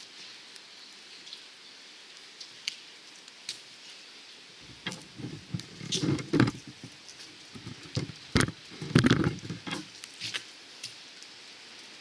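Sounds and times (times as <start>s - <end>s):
light rain falling: 0.0s - 12.0s
low thumps and knocks: 4.6s - 9.9s.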